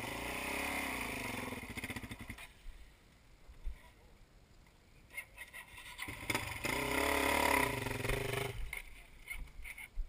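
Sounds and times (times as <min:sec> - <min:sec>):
dirt bike engine revving: 0:00.0 - 0:02.4, 0:06.0 - 0:08.8.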